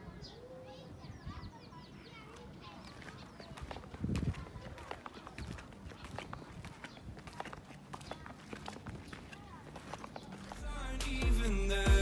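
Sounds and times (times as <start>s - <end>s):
footsteps on concrete: 2.2s - 10.8s.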